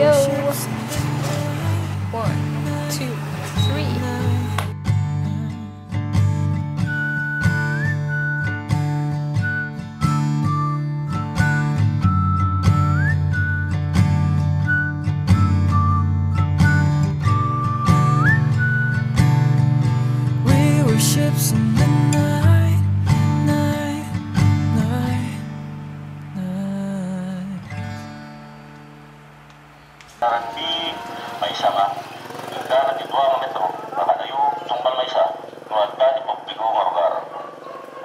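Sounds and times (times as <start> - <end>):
acoustic guitar: 0.0 - 33.1
sliding whistle-like melody: 6.8 - 8.6, 9.4 - 13.8, 14.6 - 19.2.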